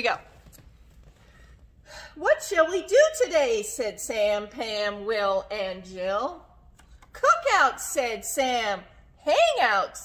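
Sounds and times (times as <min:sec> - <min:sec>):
woman speaking: 0:00.0 - 0:00.3, 0:02.2 - 0:06.6, 0:07.2 - 0:10.0.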